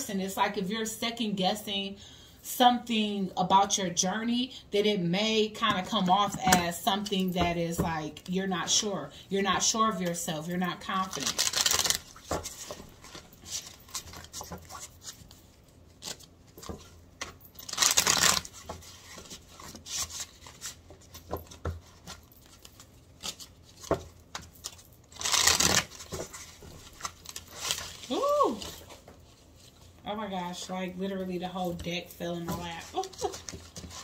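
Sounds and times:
cards being shuffled: 11.0 - 29.8, 32.5 - 34.0
cards riffling: 11.2 - 15.3, 16.0 - 20.8, 22.4 - 28.1.

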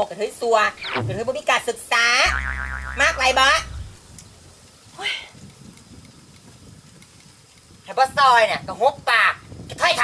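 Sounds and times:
comic boing sound effect: 0.8 - 1.4, 2.3 - 4.0.

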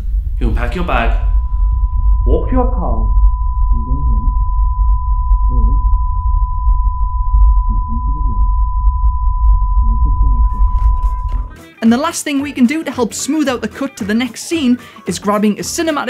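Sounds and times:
deep rumbling cinematic bass: 0.0 - 11.6
high-pitched test tone: 0.4 - 11.6.

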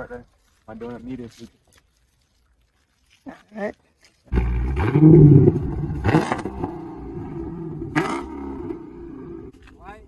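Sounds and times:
car engine revving: 4.3 - 9.6.

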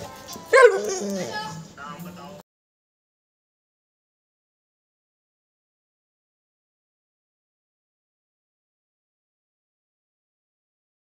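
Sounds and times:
dog barking: 0.5 - 1.4.

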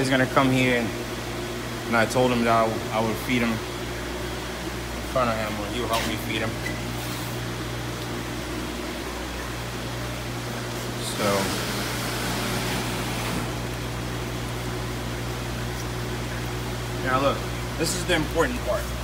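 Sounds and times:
air conditioning hum and hiss: 0.0 - 19.0.

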